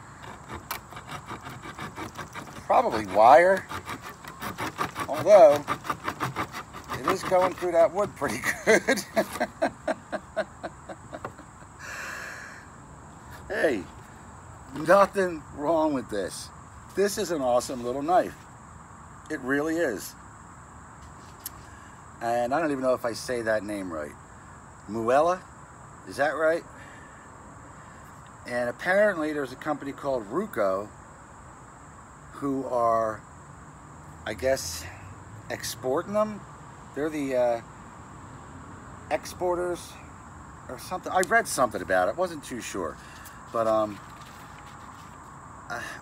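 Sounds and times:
outdoor background rumble: 0:00.0 - 0:46.0
knife sawing through wood: 0:00.1 - 0:09.6.

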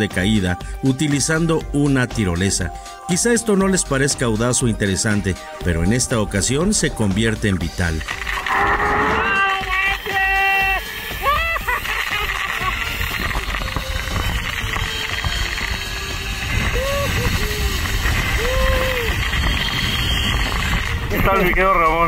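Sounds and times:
zip-line trolley rushing on cable: 0:08.0 - 0:21.4
wind on microphone: 0:12.5 - 0:22.0.

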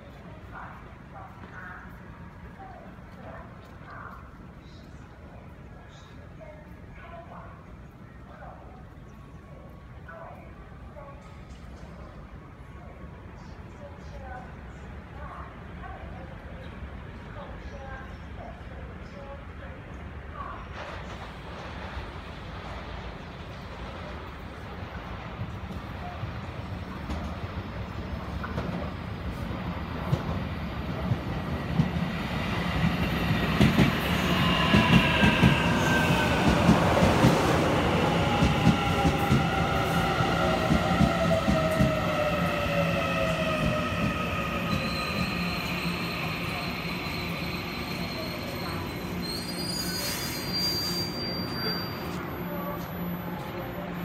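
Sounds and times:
electric train arriving: 0:20.7 - 0:54.0
high squeal of wheels and brakes: 0:44.6 - 0:53.5.

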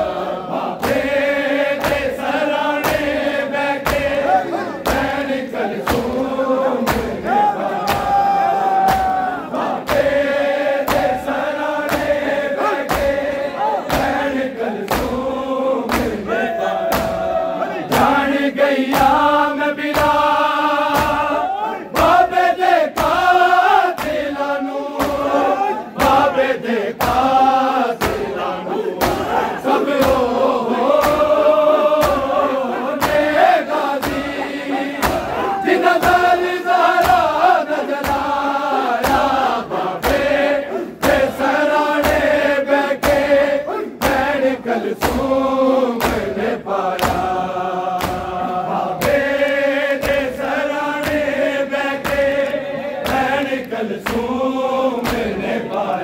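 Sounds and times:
hand slaps on chests: 0:00.0 - 0:56.0
men chanting in unison: 0:00.0 - 0:56.0.

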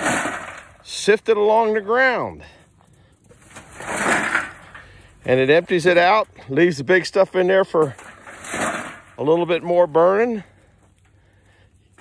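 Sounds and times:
metal barrel rolling on grass: 0:00.0 - 0:12.0.

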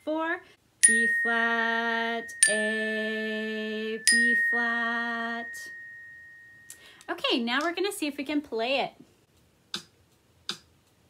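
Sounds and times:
xylophone playing: 0:00.8 - 0:06.9.

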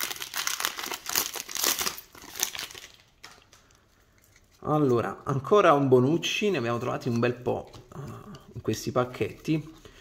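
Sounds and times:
plastic wrapper crinkling: 0:00.0 - 0:04.6.

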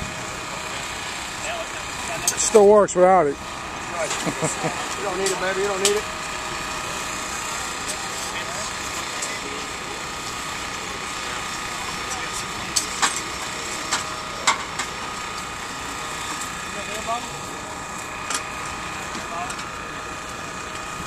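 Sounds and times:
engine drone: 0:00.0 - 0:21.0.

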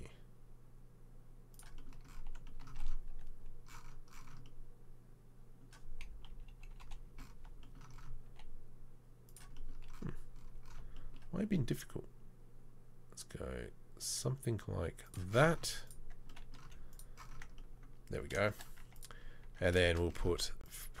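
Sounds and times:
steady low hum: 0:00.0 - 0:21.0
keyboard keystrokes: 0:01.6 - 0:04.6.

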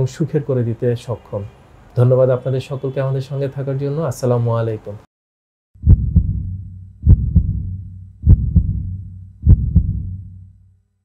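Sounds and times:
heartbeat thumps: 0:05.8 - 0:10.5
low rumble: 0:05.8 - 0:10.6.

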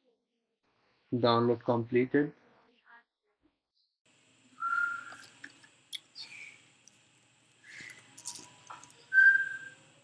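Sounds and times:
short high whistle-like tone: 0:04.6 - 0:05.2, 0:09.1 - 0:09.8.

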